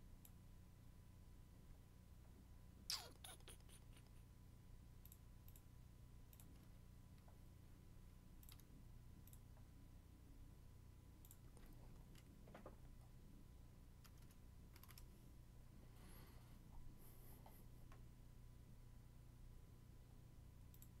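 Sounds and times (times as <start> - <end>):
low steady hum: 0.0 - 21.0
mouse and keyboard clicks: 8.4 - 8.7, 14.0 - 15.1.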